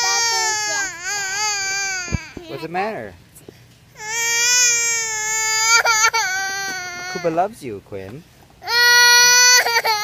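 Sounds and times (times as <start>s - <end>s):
toddler girl crying: 0.0s - 2.7s, 4.0s - 7.4s, 8.6s - 10.0s.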